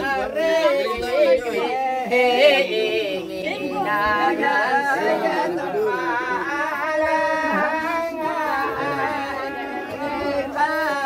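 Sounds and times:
room full of chatter: 0:00.0 - 0:11.0.

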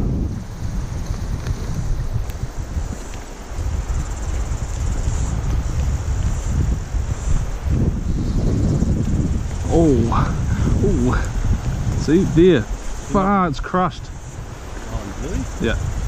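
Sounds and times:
shallow river rushing: 0:00.0 - 0:16.0
wind buffeting microphone: 0:00.0 - 0:16.0.

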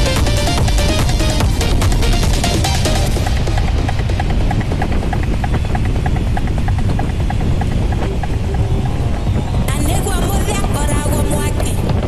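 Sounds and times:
electronic music with quick beat: 0:00.0 - 0:11.5
wind rumbling on microphone: 0:00.0 - 0:12.0.

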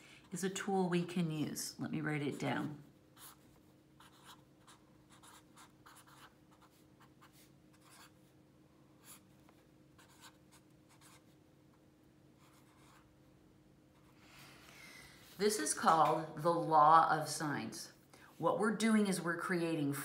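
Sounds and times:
faint steady hum: 0:00.0 - 0:20.0
felt-tip pen scratching on paper: 0:04.0 - 0:08.1, 0:10.0 - 0:11.3, 0:12.4 - 0:13.1.

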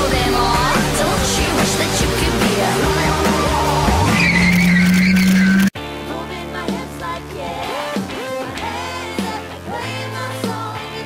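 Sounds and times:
live pop music with singing: 0:00.0 - 0:04.5, 0:06.0 - 0:11.0
high wavering tyre squeal: 0:02.8 - 0:05.7.

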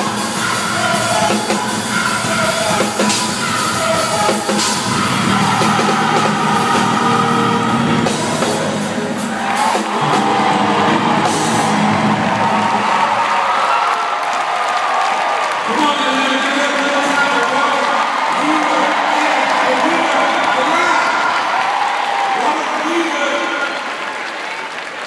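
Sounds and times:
gospel choir singing: 0:00.0 - 0:13.4
backing band: 0:00.0 - 0:21.7
whoops: 0:09.3 - 0:15.7.

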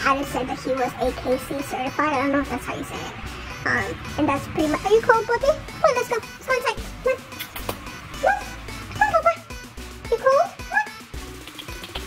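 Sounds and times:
background music: 0:00.0 - 0:12.0
puppy crying: 0:08.1 - 0:09.4, 0:10.5 - 0:11.1.

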